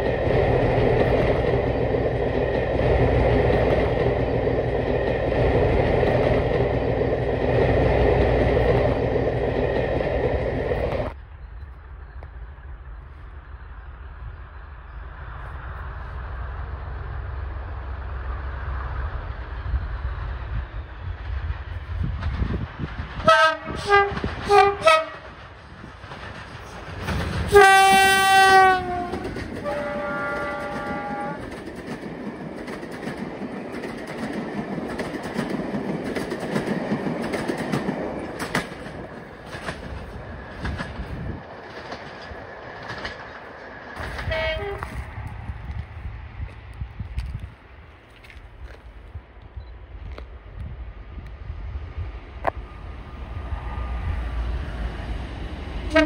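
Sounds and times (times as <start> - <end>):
wheels clicking over rail joints: 22.0 - 45.1
two-tone train horn: 23.2 - 25.3, 27.5 - 31.4, 44.2 - 45.0.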